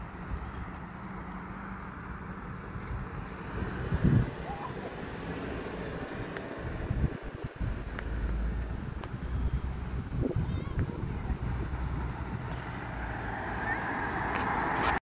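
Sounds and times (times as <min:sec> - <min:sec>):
wind buffeting microphone: 0:02.5 - 0:15.0
wind thumps on microphone: 0:06.2 - 0:12.9.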